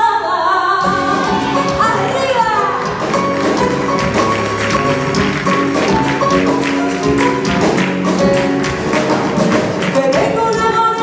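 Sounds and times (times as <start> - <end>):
bass notes: 0.8 - 10.9
held keyboard notes: 0.8 - 11.0.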